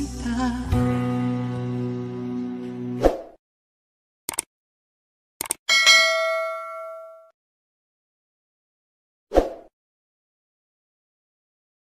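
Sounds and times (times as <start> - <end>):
mouse double click: 4.3 - 4.5
bright bell ding: 5.7 - 7.3.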